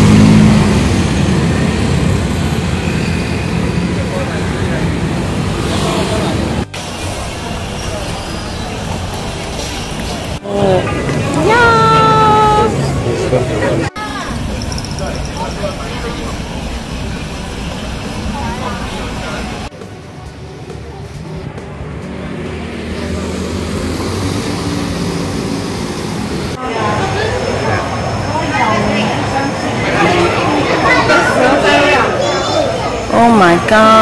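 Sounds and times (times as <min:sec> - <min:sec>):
traffic going by: 0:00.0 - 0:34.0
crowd chatter: 0:02.4 - 0:34.0.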